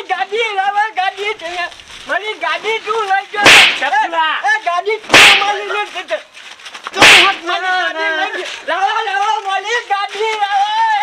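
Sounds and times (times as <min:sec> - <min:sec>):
sharp slap crack: 0:03.4 - 0:04.0, 0:05.1 - 0:05.8, 0:06.9 - 0:07.6.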